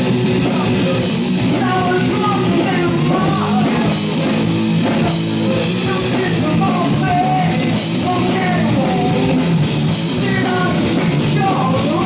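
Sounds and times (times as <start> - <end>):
bass guitar: 0.0 - 12.0
distorted electric guitar: 0.0 - 12.0
drum kit: 0.0 - 12.0
lead vocal singing: 0.3 - 12.0.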